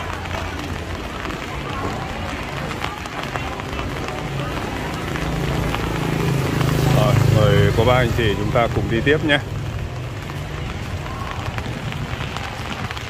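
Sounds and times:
people chatting: 0:00.0 - 0:09.5, 0:10.1 - 0:13.0
motorbike engine: 0:00.0 - 0:13.0
rain on wet pavement: 0:00.0 - 0:13.0.

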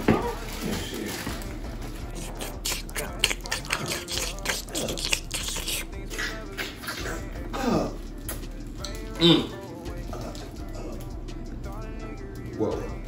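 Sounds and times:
plastic wrapper tearing and crinkling: 0:02.2 - 0:05.9.

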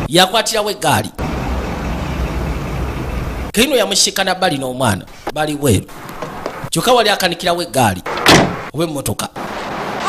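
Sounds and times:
car engine running: 0:01.2 - 0:03.6.

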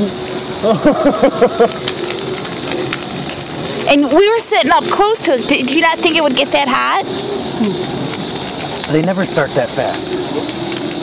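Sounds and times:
bonfire crackling and popping: 0:00.0 - 0:11.0
voices in background: 0:03.8 - 0:10.6.

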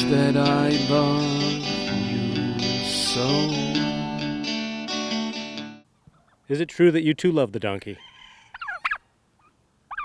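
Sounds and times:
turkey gobbling: 0:08.0 - 0:10.0.

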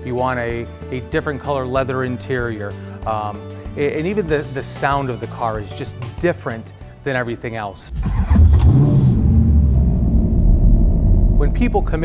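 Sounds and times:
car engine starting and idling: 0:07.9 - 0:12.0.

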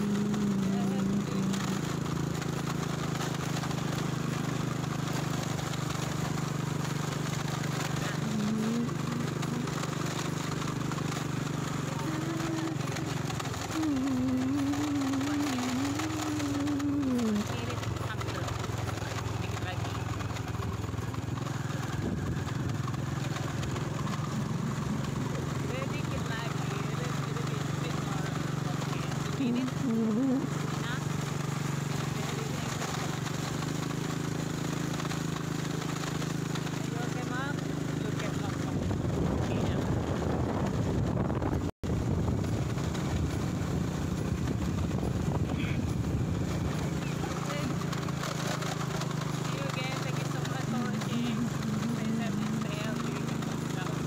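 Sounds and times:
small motorcycle engine running: 0:00.0 - 0:54.0
wind noise: 0:38.7 - 0:47.0.

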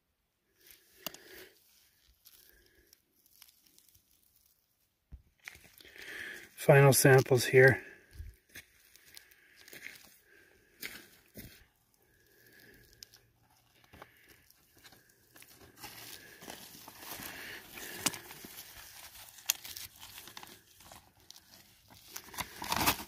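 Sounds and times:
rocks rustling in glove: 0:00.6 - 0:23.0.

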